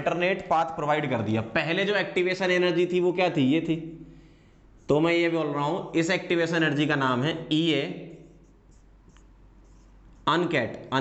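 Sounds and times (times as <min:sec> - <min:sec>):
marker scratching on whiteboard: 0:04.2 - 0:11.0.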